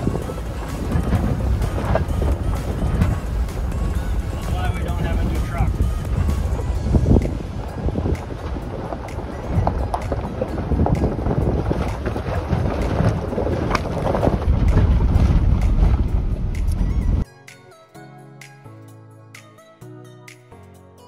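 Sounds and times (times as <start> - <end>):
tyres crunching over rocks: 0.0 - 16.8
rocks clicking and knocking: 0.0 - 16.9
truck crawling on rough road: 0.0 - 17.2
wind on microphone: 0.0 - 17.2.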